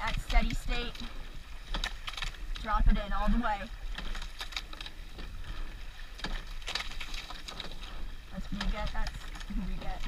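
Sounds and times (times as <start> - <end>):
oar blades splashing water: 0.0 - 10.0
oars knocking in oarlocks: 0.0 - 10.0
wind rumbling on microphone: 0.0 - 10.0.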